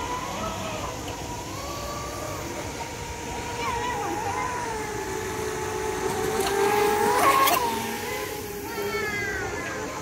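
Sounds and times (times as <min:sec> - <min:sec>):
boat passing hiss: 0:00.0 - 0:10.0
model boat motor whining: 0:00.0 - 0:10.0.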